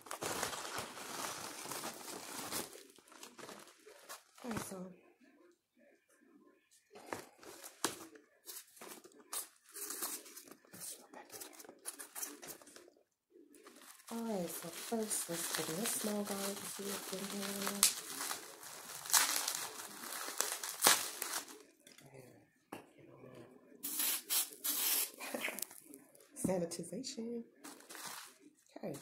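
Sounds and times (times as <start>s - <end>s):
plastic wrap crinkling: 0.0s - 4.9s, 13.6s - 21.8s, 23.9s - 26.0s, 27.6s - 29.0s
spray bottle hissing: 23.8s - 25.2s.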